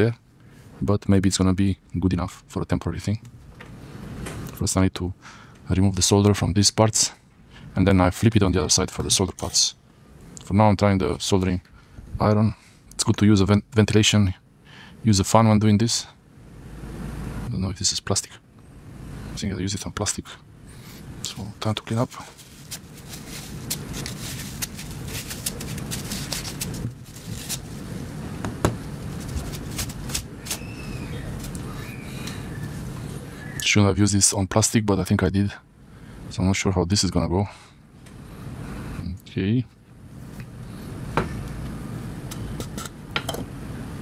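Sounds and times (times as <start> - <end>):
low background noise: 0.0 - 44.0
steady low hum: 0.0 - 44.0.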